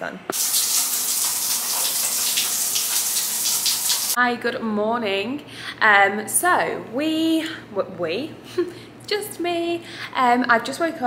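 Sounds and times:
shower water spraying: 0.3 - 4.2.

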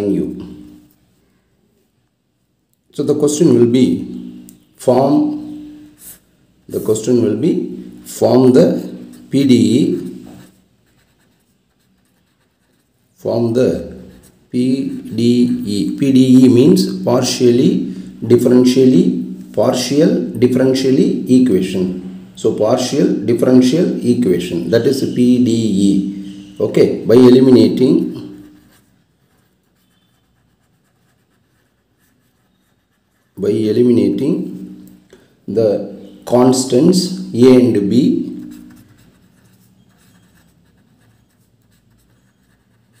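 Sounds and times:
marker scratching on paper: 4.2 - 6.3, 7.7 - 18.7, 24.6 - 34.9, 35.9 - 43.0.

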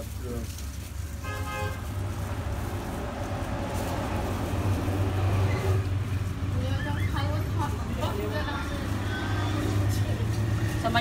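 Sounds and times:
car horn toot: 1.2 - 1.8
vehicle engine rumbling past: 1.8 - 11.0.

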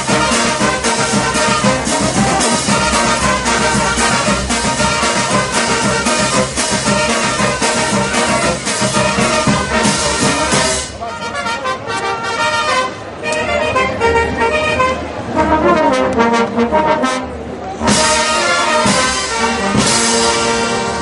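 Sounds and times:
brass band playing: 0.0 - 21.0.

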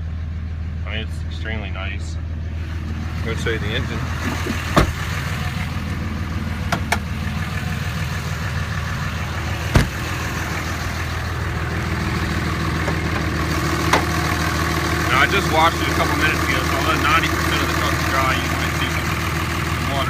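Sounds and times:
diesel engine idling: 0.0 - 20.0
sharp thump: 4.4 - 5.0, 9.7 - 10.1.

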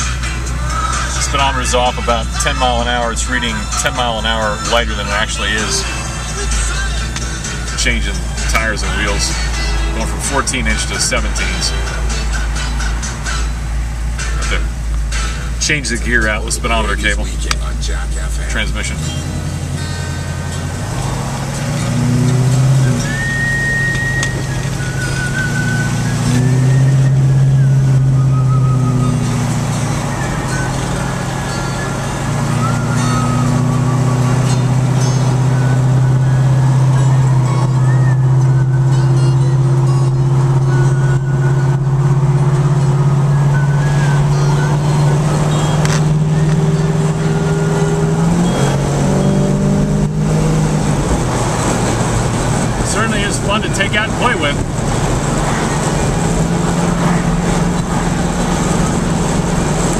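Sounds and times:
car engine from inside cabin: 0.0 - 59.9.

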